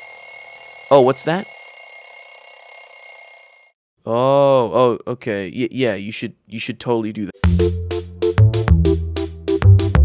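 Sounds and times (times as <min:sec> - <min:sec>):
bell ringing: 0:00.0 - 0:03.8.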